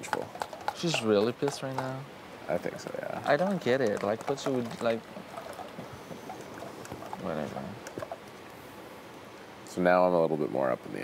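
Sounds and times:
steady low hiss: 0.0s - 11.0s
faint clicks: 7.8s - 8.6s.

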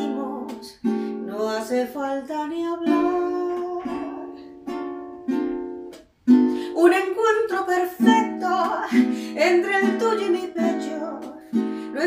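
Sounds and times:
person singing: 0.0s - 5.5s, 6.4s - 12.0s
ukulele strumming: 0.0s - 12.0s.

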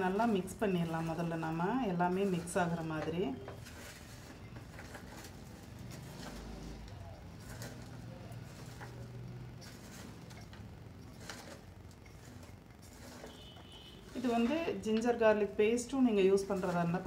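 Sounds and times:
vegetables rustling in steel bowl: 0.0s - 17.0s.

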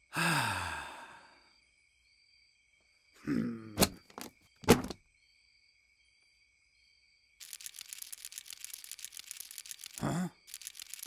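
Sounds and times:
crickets chirring: 0.0s - 11.0s
man sighing: 0.1s - 1.4s.

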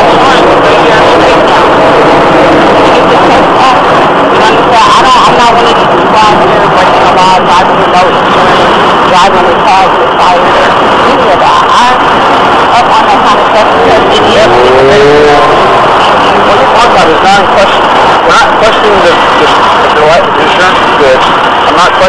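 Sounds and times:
indistinct voices: 0.0s - 22.0s
vehicle engine running: 0.0s - 22.0s.

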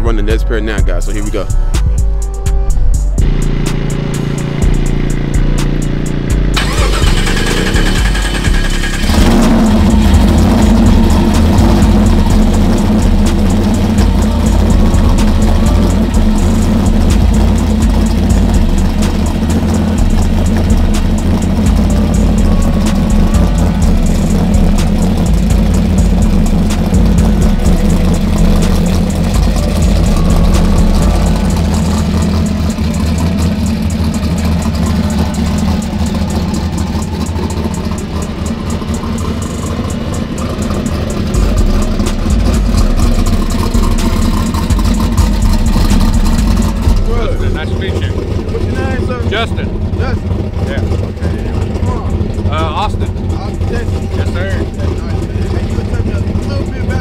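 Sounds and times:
car engine idling: 0.0s - 57.0s.

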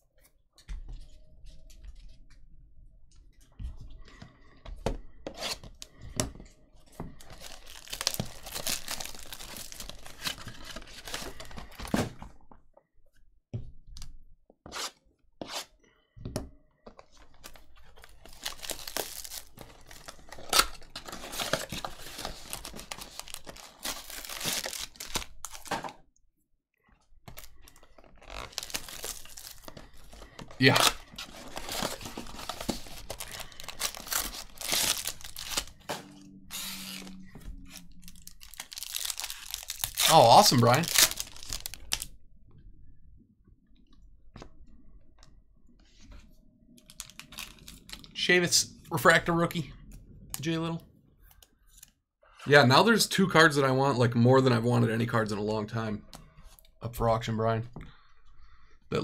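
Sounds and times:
wrapped packs crinkling: 7.2s - 11.9s, 17.4s - 25.7s, 27.3s - 35.8s, 36.5s - 42.1s, 46.8s - 48.1s.

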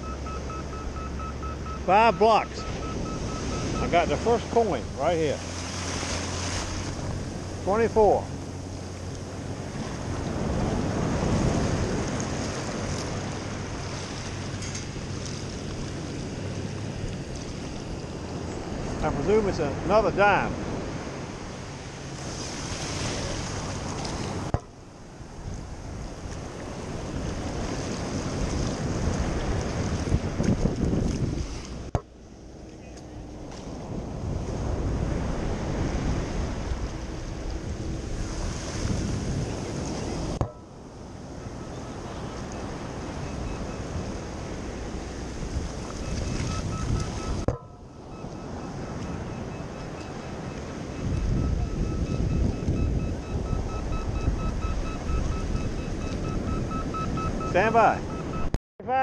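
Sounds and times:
surf washing in shallow water: 0.0s - 32.0s, 33.3s - 58.5s
wind buffeting microphone: 2.7s - 19.1s, 20.4s - 31.9s, 33.2s - 58.5s.

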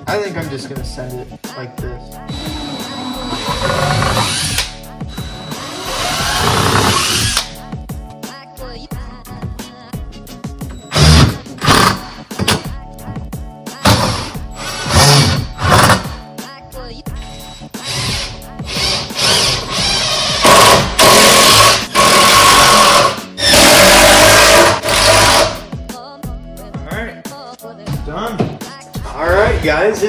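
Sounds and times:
background music: 0.0s - 30.0s
cordless drill running: 2.3s - 7.4s, 17.4s - 25.6s.

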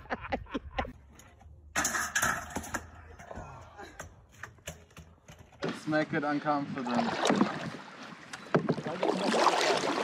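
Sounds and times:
unicycle crashing onto concrete: 1.7s - 3.0s.

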